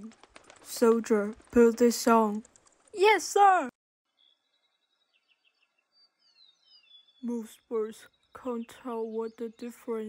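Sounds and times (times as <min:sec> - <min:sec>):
bird chirps and whistles: 0:04.2 - 0:07.2.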